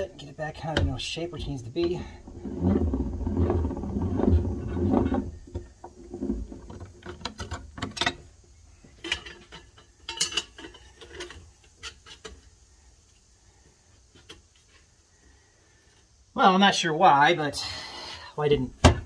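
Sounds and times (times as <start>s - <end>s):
metal strip rolling through roller: 2.2s - 6.6s.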